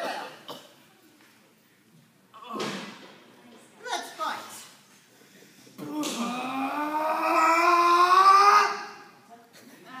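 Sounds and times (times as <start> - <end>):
person's drawn-out vocal cry: 5.9 - 9.1.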